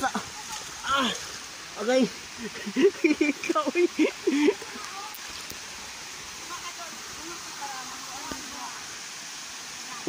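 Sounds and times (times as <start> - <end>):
waterfall rushing into pool: 0.0 - 10.0.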